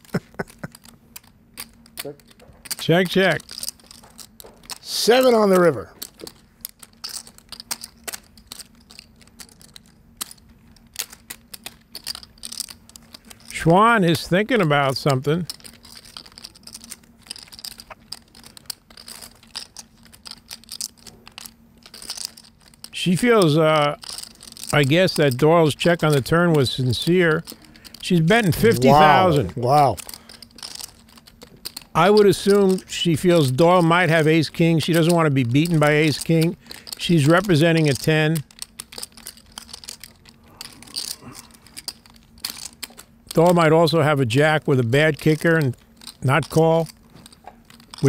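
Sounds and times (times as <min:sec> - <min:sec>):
faint steady hum: 0:00.0 - 0:48.0
poker chips clicking: 0:00.0 - 0:48.0.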